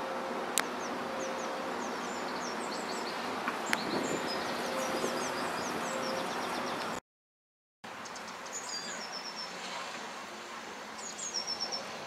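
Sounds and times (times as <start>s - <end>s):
distant traffic hum: 0.0s - 7.0s, 7.9s - 12.0s
songbirds chirping: 0.0s - 7.0s, 7.9s - 10.0s, 10.6s - 12.0s.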